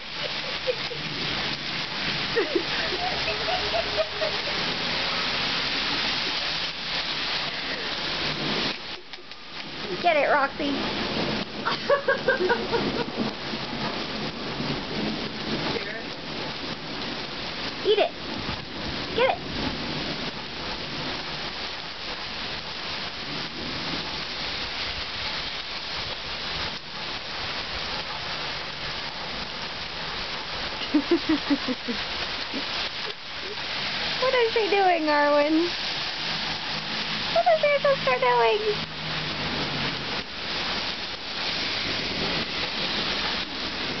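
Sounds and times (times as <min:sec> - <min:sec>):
steady rain on street and lawn: 0:00.0 - 0:44.0.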